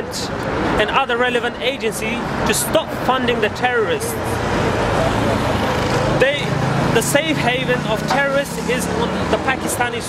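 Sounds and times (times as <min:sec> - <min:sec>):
road traffic rush: 0:00.0 - 0:10.0.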